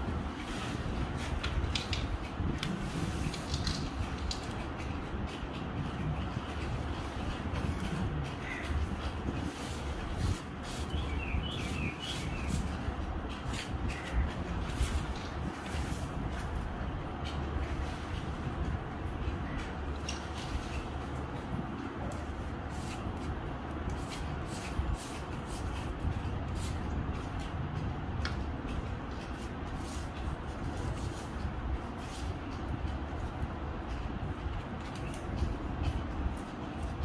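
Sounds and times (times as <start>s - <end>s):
low background rumble: 0.0s - 37.0s
crow cawing: 8.4s - 8.8s.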